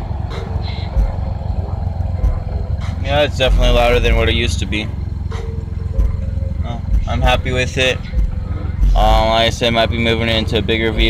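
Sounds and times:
deep subwoofer bass rumble: 0.0 - 11.0.

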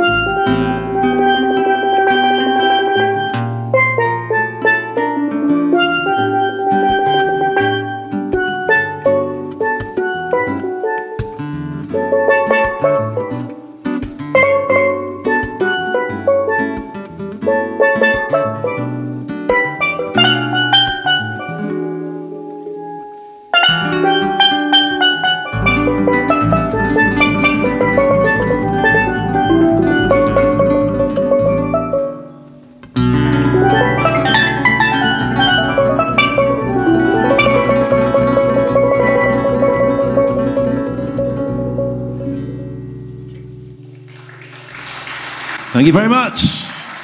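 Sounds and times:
steel pan melody: 0.0 - 45.5
acoustic guitar strumming: 0.0 - 47.0.

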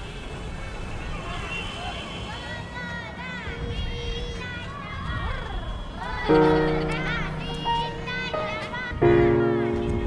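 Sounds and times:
traffic-like street noise: 0.0 - 10.0.

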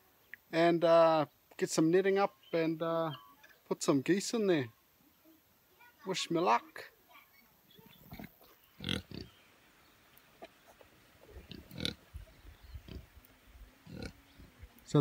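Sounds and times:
pigs grunting: 8.0 - 9.3, 11.4 - 12.0, 12.8 - 13.1, 13.8 - 14.5.

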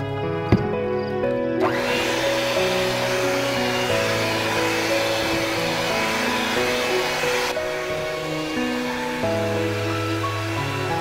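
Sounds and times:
background music: 0.0 - 11.0
electric hand mixer running: 1.5 - 11.0.

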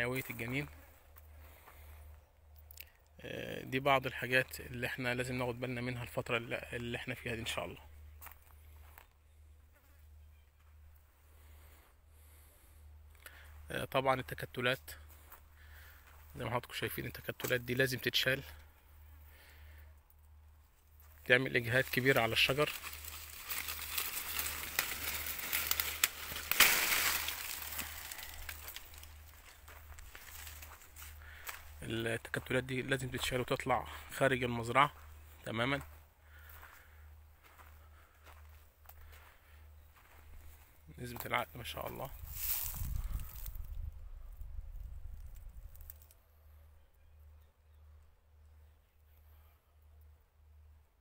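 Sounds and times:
leaves and twigs rustling: 20.7 - 33.4, 37.4 - 43.9, 44.8 - 46.2.

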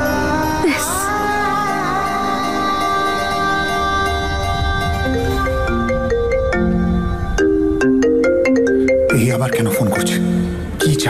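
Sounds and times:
marimba-like phone ringtone: 5.1 - 11.0
person speaking: 9.1 - 11.0.

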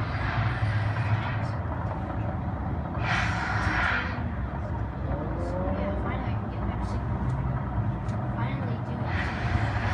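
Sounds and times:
low outdoor rumble: 0.0 - 9.9.

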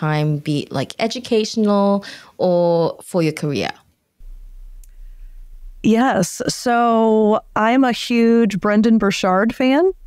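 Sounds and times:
woman speaking: 0.0 - 3.8, 5.8 - 10.0
faint low hum: 4.2 - 10.0.

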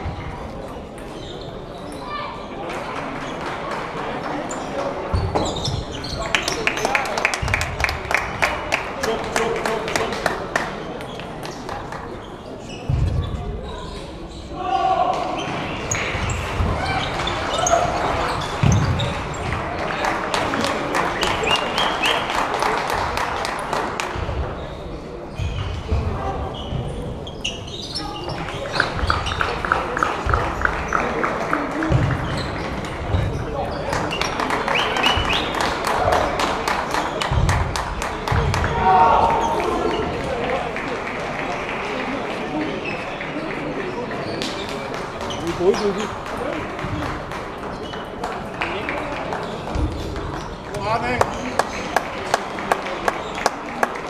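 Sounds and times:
chatter of voices: 0.0 - 54.0.

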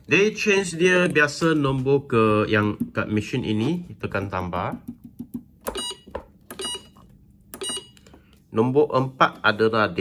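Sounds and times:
short electronic beeps: 5.7 - 7.0, 7.6 - 8.0.

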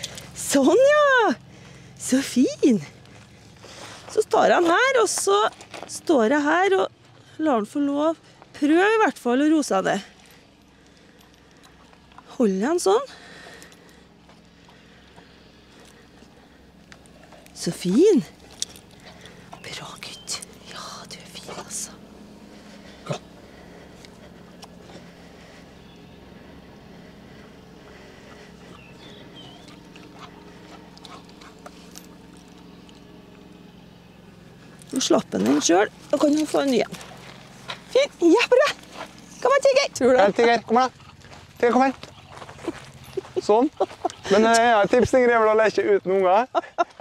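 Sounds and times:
low hum: 0.0 - 47.0.

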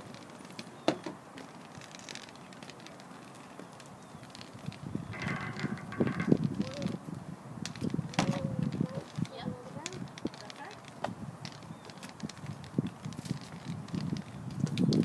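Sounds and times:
footsteps on pavement: 7.7 - 15.0.

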